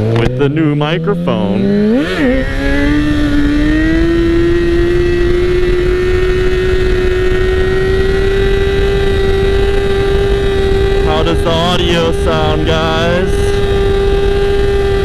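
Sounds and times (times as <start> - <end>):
motorcycle engine at high revs: 0.0 - 15.0
wind rumble on microphone: 1.6 - 15.0.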